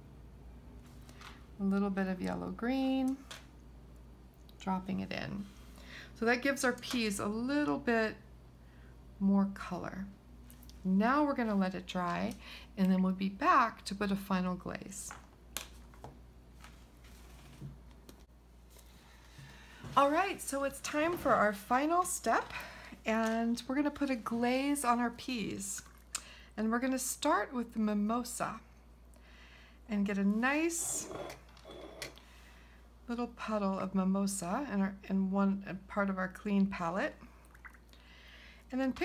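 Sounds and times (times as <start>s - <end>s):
soft rustle: 15.7s - 21.5s.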